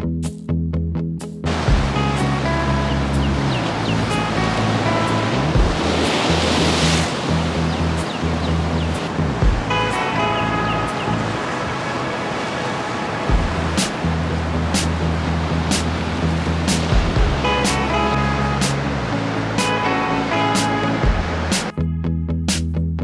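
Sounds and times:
background music with steady beat: 0.0 - 6.4, 7.0 - 11.4, 13.3 - 23.0
ocean waves breaking on rocks: 1.5 - 21.7.

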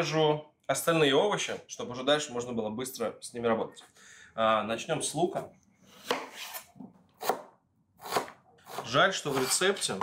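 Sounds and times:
knife cutting onion on wooden board: 5.9 - 10.0.

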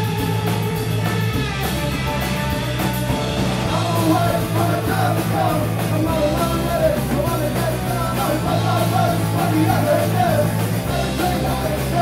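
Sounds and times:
bass guitar: 0.0 - 12.0
drum kit with cymbals: 0.0 - 12.0
electric guitar: 0.0 - 12.0.

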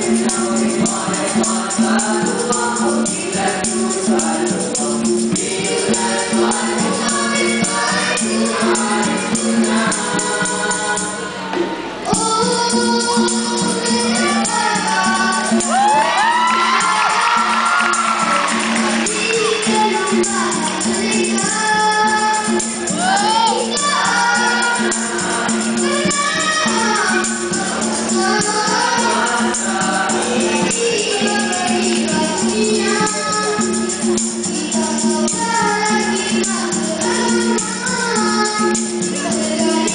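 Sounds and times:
male voices singing in harmony: 0.0 - 11.4, 12.7 - 39.9
light percussion beat: 0.0 - 39.9.

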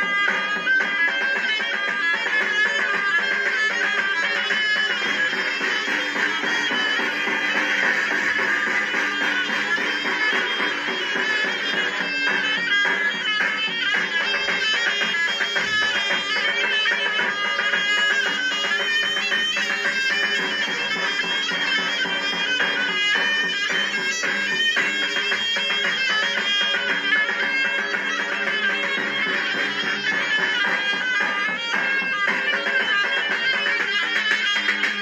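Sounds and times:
large drum beats: 0.0 - 35.0
reedy shawm dance tune: 0.0 - 35.0.

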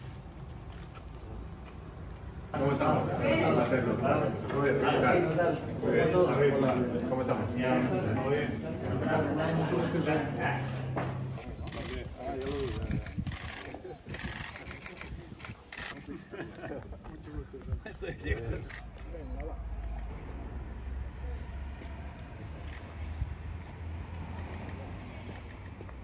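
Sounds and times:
murmur of men talking: 2.5 - 20.2.

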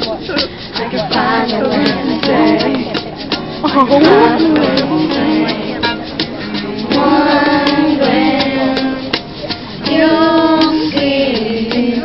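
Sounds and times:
acoustic guitars strummed: 0.0 - 12.0
hand shaker ticking: 0.0 - 12.0.

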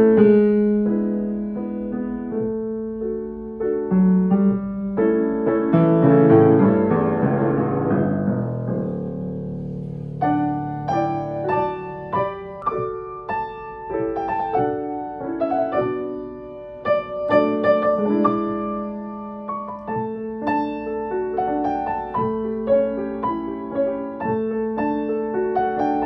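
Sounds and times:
grand piano playing chords: 0.0 - 26.0.

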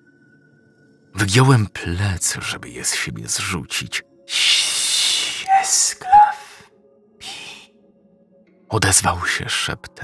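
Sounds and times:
low background music drone: 0.0 - 10.0
person whispering: 2.4 - 7.7.

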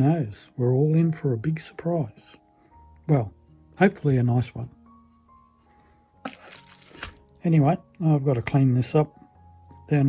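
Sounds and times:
soft background music: 0.0 - 10.0
crunching scraping on glass: 6.2 - 7.2.

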